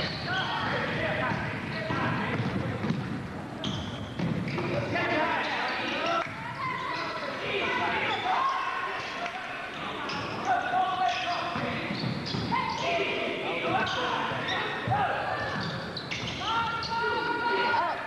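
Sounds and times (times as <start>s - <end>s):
spectators' voices: 4.6s - 18.0s.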